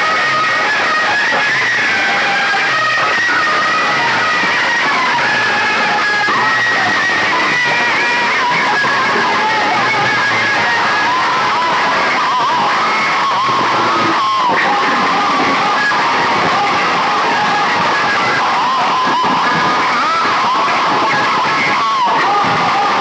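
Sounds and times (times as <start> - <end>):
loud music from loudspeakers: 0.0 - 23.0.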